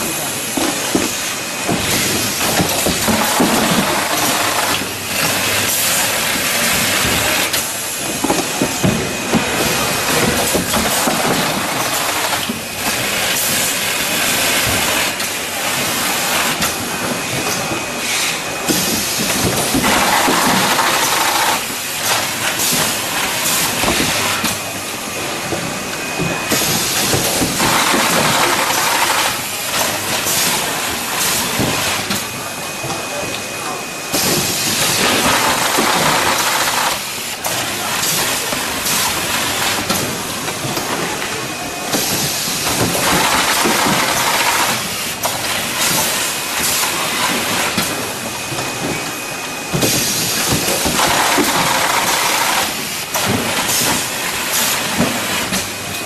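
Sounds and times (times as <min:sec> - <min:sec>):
machine mechanical clatter: 0:26.5 - 0:32.3, 0:34.1 - 0:48.0, 0:49.7 - 0:56.0.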